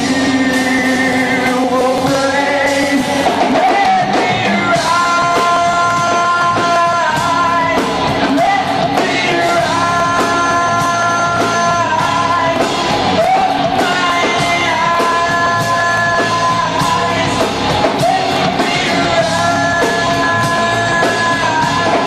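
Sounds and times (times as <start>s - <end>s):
lead singer vocals: 0.0s - 22.0s
live rock band playing: 0.0s - 22.0s.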